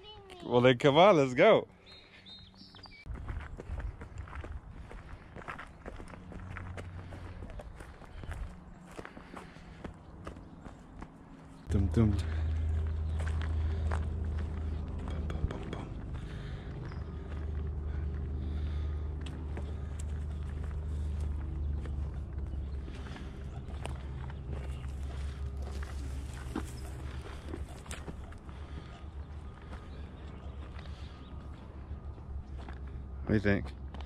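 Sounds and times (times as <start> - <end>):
footsteps on gravel path: 1.8 - 34.0
low rumble: 11.7 - 33.2.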